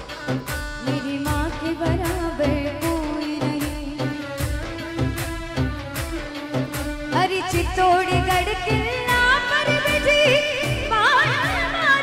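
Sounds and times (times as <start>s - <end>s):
instrumental accompaniment: 0.0s - 12.0s
steady drum beat: 0.0s - 12.0s
woman singing into a microphone: 0.0s - 12.0s.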